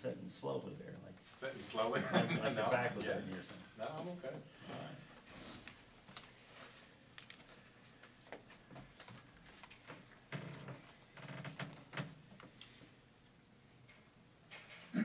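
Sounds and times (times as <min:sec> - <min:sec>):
papers rustling: 0:05.7 - 0:11.1.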